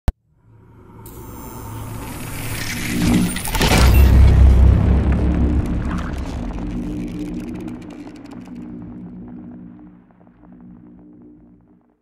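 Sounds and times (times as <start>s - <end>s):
deep low rumble: 1.1s - 12.0s.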